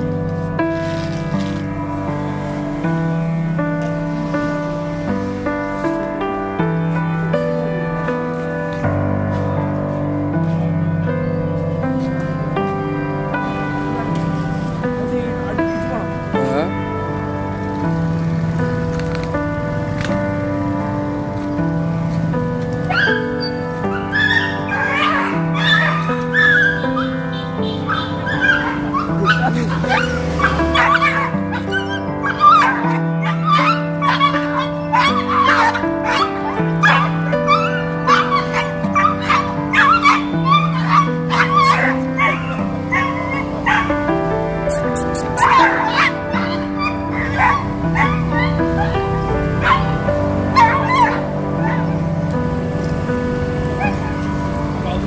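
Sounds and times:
background music of held chords: 0.0s - 55.0s
dog yelping and whimpering: 22.9s - 27.2s, 27.9s - 43.9s, 44.7s - 49.0s, 50.6s - 51.9s.

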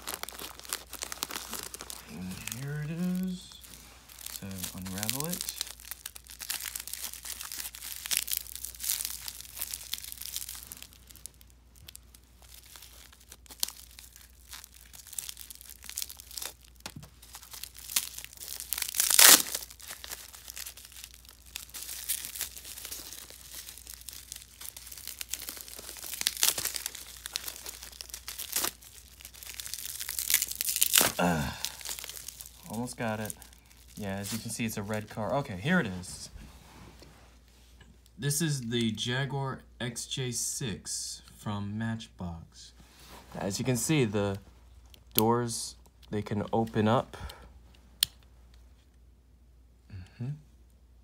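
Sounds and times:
bubble wrap crinkling and tearing: 0.0s - 38.2s, 42.8s - 48.9s.

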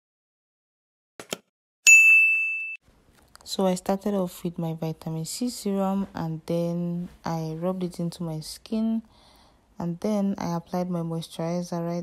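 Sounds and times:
bright bell ding: 1.9s - 2.8s.

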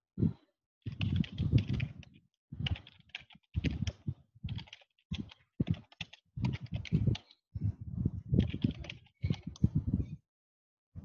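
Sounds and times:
typing on computer keyboard: 0.9s - 7.4s, 8.4s - 9.7s.

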